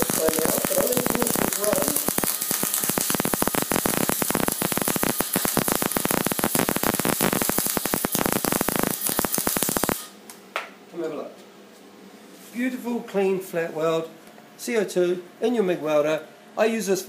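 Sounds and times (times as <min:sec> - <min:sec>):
welding arc crackling: 0:00.0 - 0:10.2.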